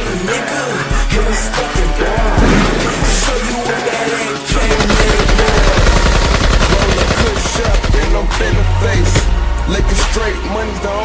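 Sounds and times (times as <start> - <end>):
hip hop beat with deep bass: 0.0 - 11.0
rapid automatic gunfire: 4.4 - 8.5.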